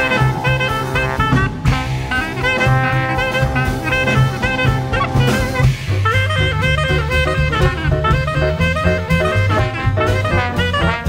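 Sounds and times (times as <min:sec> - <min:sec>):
clarinet: 0:00.0 - 0:11.0
drum kit: 0:00.0 - 0:11.0
trombone: 0:00.0 - 0:11.0
upright bass: 0:00.0 - 0:11.0.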